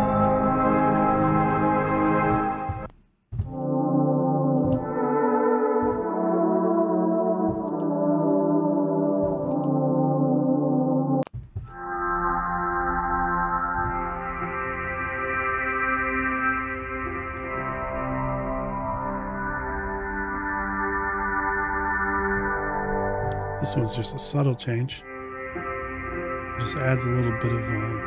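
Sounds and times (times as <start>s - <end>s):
lo-fi brass pad chords: 0.0s - 2.9s, 3.5s - 28.0s.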